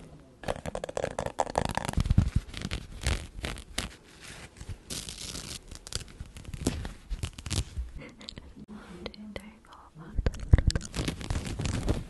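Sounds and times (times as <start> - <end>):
soft whispering: 8.0 - 11.0.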